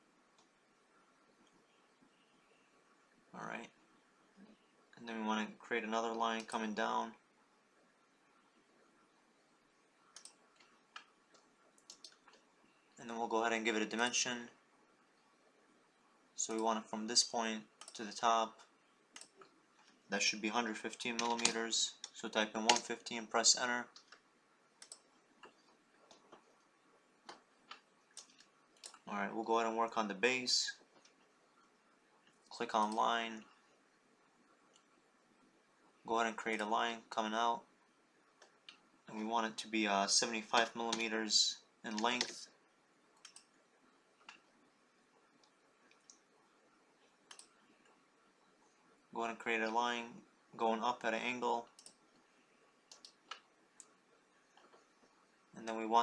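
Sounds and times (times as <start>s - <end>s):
computer mouse clicks: 10.0s - 12.5s, 17.8s - 18.1s, 19.1s - 20.0s, 21.1s - 23.0s, 23.8s - 29.1s, 40.5s - 41.1s, 41.9s - 42.4s, 43.2s - 43.6s, 47.0s - 48.0s, 51.7s - 52.2s, 52.9s - 55.1s
faint computer mouse clicks: 10.1s - 12.5s, 24.8s - 26.5s, 43.2s - 43.5s, 47.3s - 48.0s, 51.8s - 52.0s, 52.9s - 54.9s.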